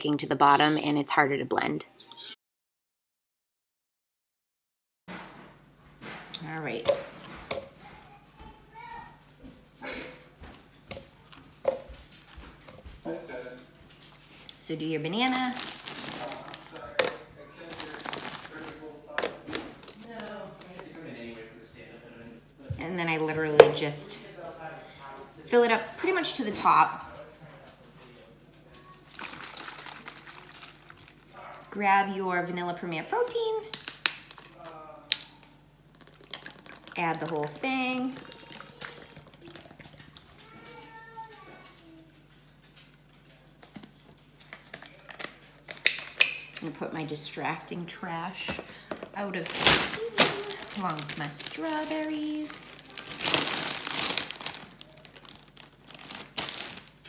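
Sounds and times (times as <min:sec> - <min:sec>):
low steady hum: 0:05.4 - 0:57.0
liquid pouring into plastic cup: 0:29.1 - 0:31.2, 0:35.9 - 0:40.4.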